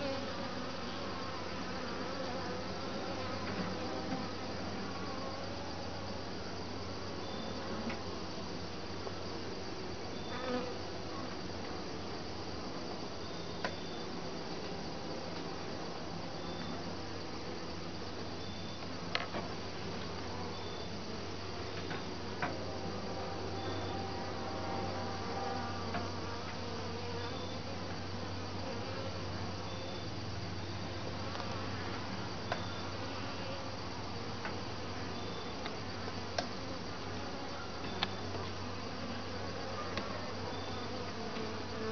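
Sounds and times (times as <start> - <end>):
honeybees buzzing: 0.0 - 6.2, 19.7 - 41.9.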